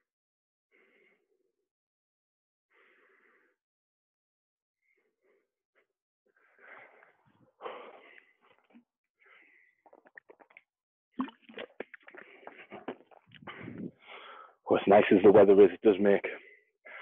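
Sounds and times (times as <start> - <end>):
man breathing hard: 0.7 - 1.4, 2.7 - 3.6, 4.8 - 8.6, 9.2 - 10.0, 12.1 - 14.6, 16.4 - 17.0
swallowing sounds: 9.8 - 14.0.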